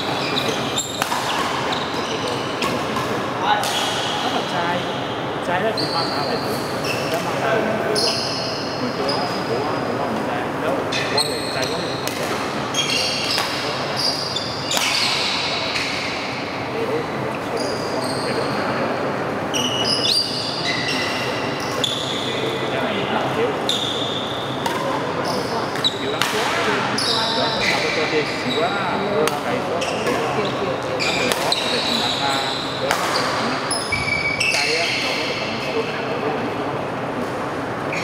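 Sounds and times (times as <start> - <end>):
shoes squeaking on court: 0.0 - 4.5, 29.3 - 35.4.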